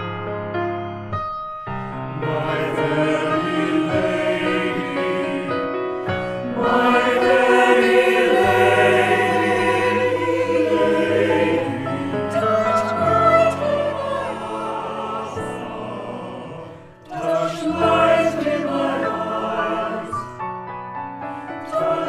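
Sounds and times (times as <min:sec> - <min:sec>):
piano accompaniment: 0:00.0 - 0:22.0
mixed choir singing: 0:02.0 - 0:20.4, 0:21.3 - 0:22.0.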